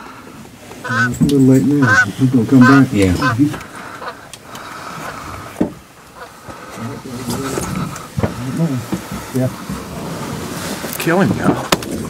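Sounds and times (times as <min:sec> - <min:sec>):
men talking quietly: 0:00.8 - 0:12.0.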